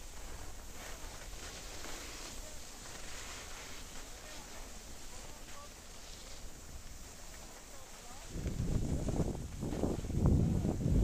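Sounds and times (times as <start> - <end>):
wind buffeting microphone: 8.2 - 11.0.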